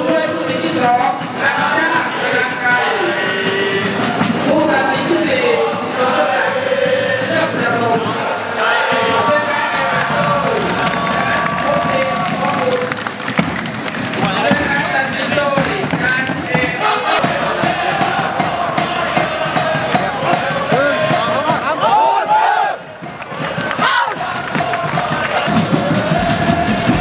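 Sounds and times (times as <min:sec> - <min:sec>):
crowd singing a chant: 0:00.0 - 0:27.0.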